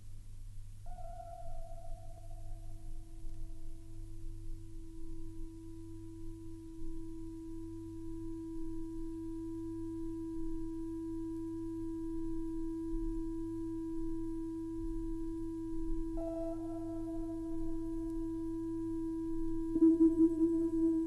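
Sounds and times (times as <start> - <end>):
faint higher tones: 16.1 - 21.0.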